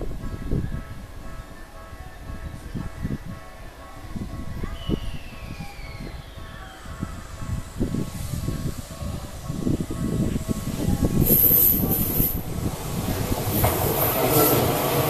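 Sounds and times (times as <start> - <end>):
train wheels rumbling on rails: 0.0 - 15.0.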